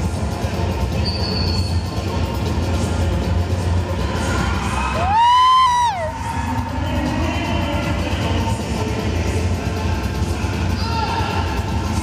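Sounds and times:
latin dance music: 0.0 - 12.0
crowd cheering and shouting: 4.0 - 7.1.

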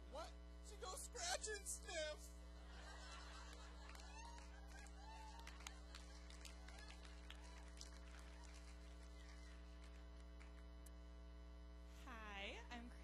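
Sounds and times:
electrical hum: 0.0 - 13.0.

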